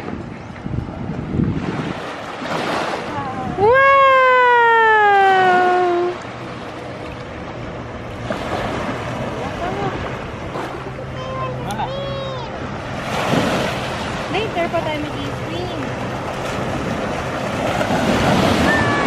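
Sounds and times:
surf washing in: 0.0s - 19.0s
small waves washing over sand: 0.9s - 7.3s, 8.1s - 19.0s.

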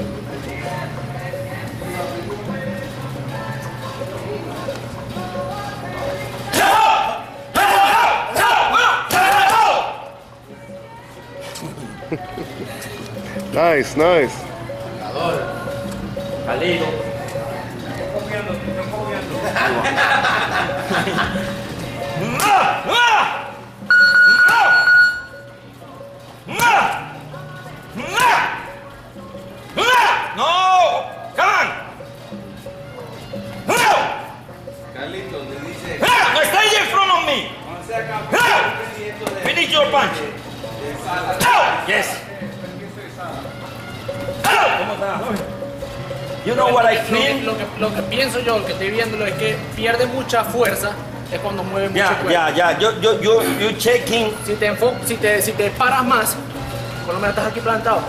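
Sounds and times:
music playing: 0.0s - 58.0s
electronic beep: 23.9s - 25.5s.

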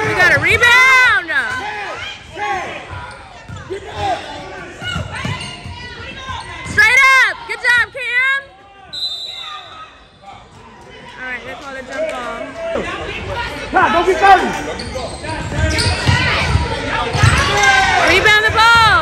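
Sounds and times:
mix of voices: 10.2s - 19.0s.

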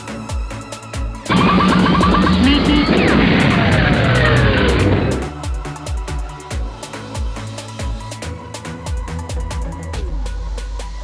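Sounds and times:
electronic dance music: 1.3s - 5.3s.

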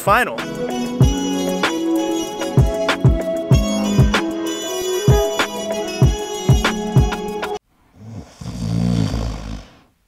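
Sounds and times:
person snoring: 8.0s - 9.9s.

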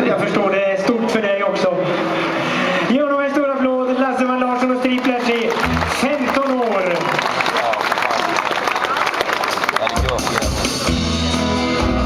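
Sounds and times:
crowd noise: 0.0s - 12.0s
people clapping: 4.5s - 11.0s.

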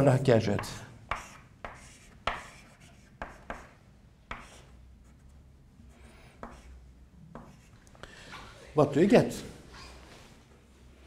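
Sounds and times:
chalk strokes on a blackboard: 0.6s - 5.3s, 6.1s - 6.8s, 7.4s - 7.7s.

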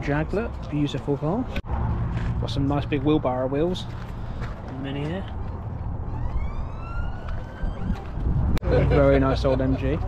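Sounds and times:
siren wailing: 6.0s - 8.6s.

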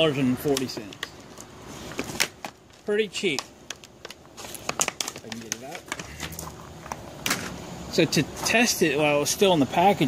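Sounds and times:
handling knocks and rustles: 0.4s - 7.6s.

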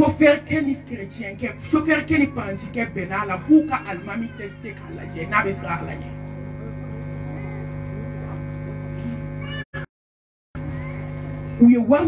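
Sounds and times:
electrical mains hum: 0.0s - 9.6s, 10.6s - 12.0s.

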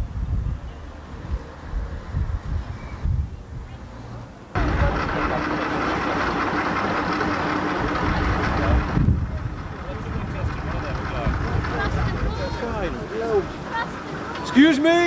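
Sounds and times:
wind buffeting microphone: 0.0s - 3.9s, 4.6s - 14.7s
constant hum: 4.6s - 15.0s
people talking: 4.6s - 15.0s.

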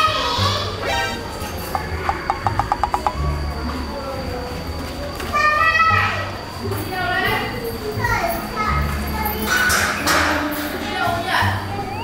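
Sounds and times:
small child calling out: 11.7s - 12.0s.

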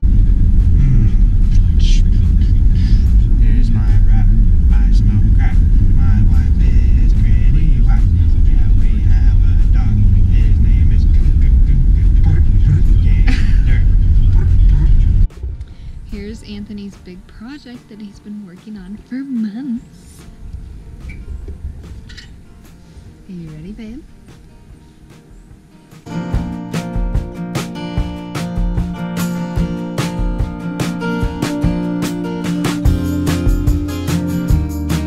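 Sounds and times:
vehicle road and engine rumble: 0.0s - 17.7s
faint man's voice: 0.8s - 15.3s.

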